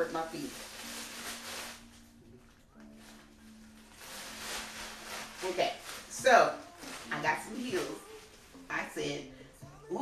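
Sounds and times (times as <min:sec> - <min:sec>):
plastic packaging crinkling: 0:00.0 - 0:09.0.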